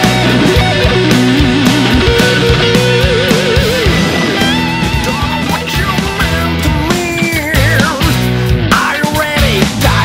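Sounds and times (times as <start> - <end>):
electric guitar lead with vibrato: 0.0 - 8.8
hard rock music: 0.0 - 10.0.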